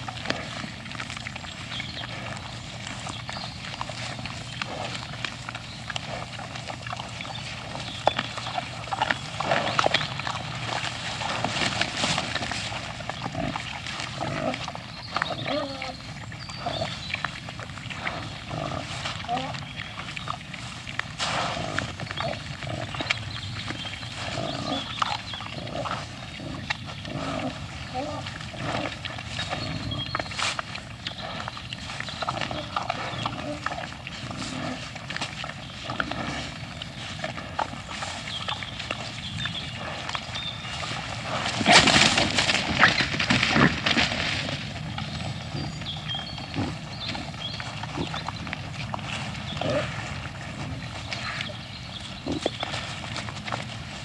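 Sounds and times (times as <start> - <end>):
boar scuffling over food: 0.0 - 54.0
wild boar grunting and snuffling: 0.0 - 54.0.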